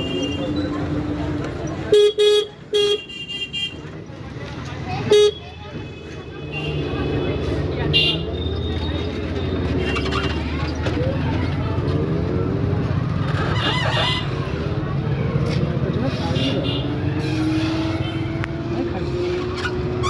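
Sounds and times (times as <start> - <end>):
vehicle engines running: 0.0 - 2.7, 3.7 - 20.0
voices of passers-by: 0.0 - 20.0.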